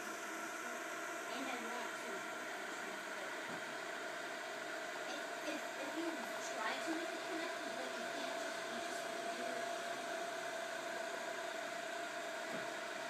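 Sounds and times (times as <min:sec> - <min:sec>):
cooling fans whirring: 0:00.0 - 0:13.0.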